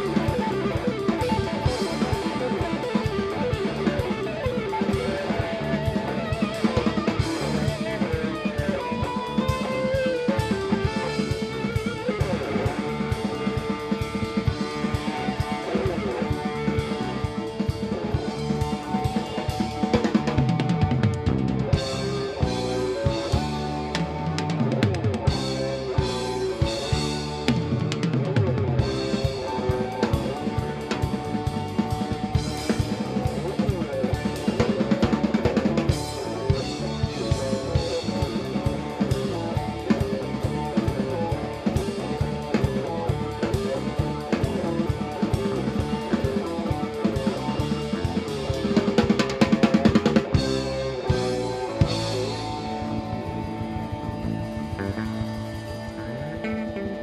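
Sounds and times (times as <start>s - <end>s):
drum kit steady beat: 0.0s - 57.0s
live rock band playing: 0.0s - 57.0s.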